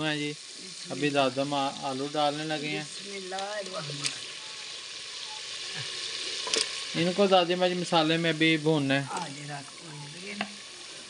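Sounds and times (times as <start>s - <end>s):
potatoes sizzling in hot oil: 0.0s - 11.0s.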